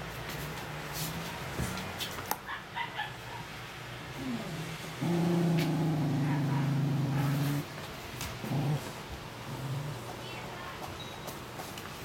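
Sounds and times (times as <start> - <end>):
dog growling low: 4.2 - 7.7, 8.4 - 10.2.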